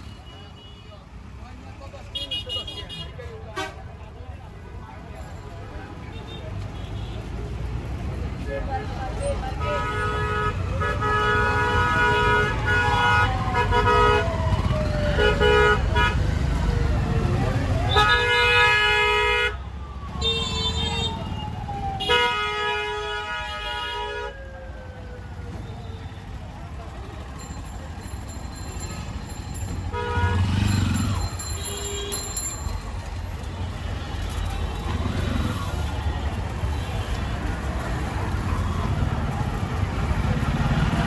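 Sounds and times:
engines rumbling: 0.0s - 41.0s
car horns honking: 9.6s - 14.2s, 15.2s - 16.2s, 29.0s - 32.6s.

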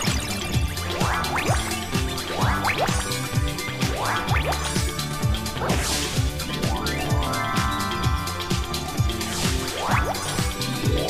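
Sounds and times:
upbeat tv theme music: 0.0s - 11.0s.

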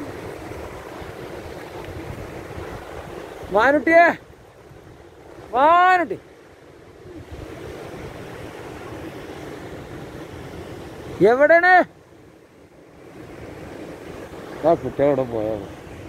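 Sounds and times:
surf washing over rocks: 0.0s - 16.0s.

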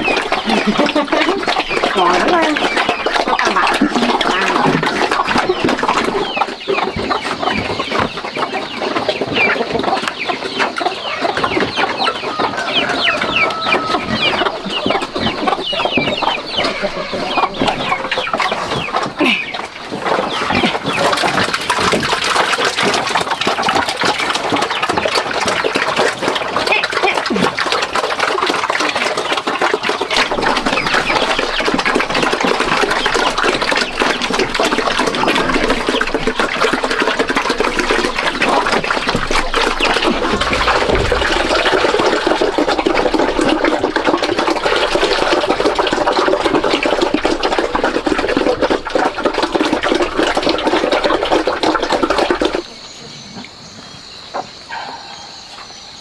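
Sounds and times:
chickens clucking: 0.0s - 56.0s
pigs chomping and slurping feed: 0.0s - 56.0s.

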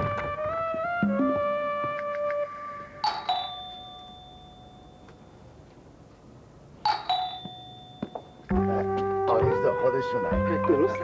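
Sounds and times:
two-tone doorbell chime: 3.0s - 5.6s, 6.9s - 8.6s.

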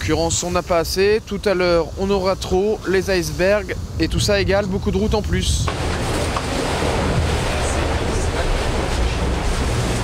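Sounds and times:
water rushing against hull: 0.0s - 10.0s.

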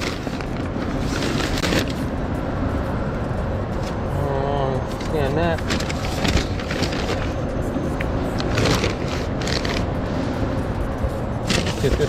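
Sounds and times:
paper bags rustling: 0.0s - 2.1s, 5.0s - 7.4s, 8.4s - 9.9s, 11.5s - 12.0s.

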